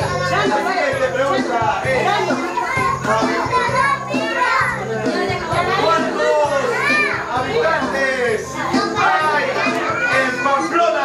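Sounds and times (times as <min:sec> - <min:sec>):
music with steady bass line: 0:00.0 - 0:10.1
children chattering and calling out: 0:00.0 - 0:11.0.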